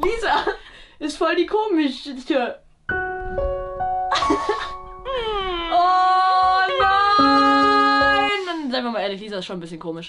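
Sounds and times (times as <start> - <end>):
person singing long notes: 5.1 - 8.5.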